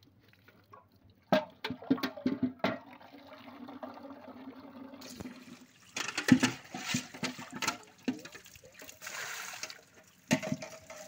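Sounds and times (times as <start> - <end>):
water sloshing and knocking in pail: 0.0 - 11.0
tap water running into pail: 0.4 - 11.0.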